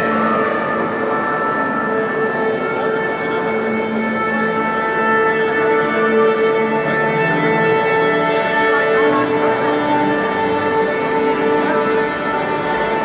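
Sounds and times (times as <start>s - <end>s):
bowed strings led by violin: 0.0s - 13.0s.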